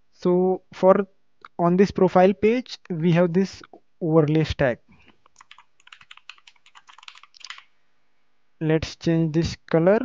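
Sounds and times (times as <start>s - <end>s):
keyboard typing: 5.2s - 7.7s.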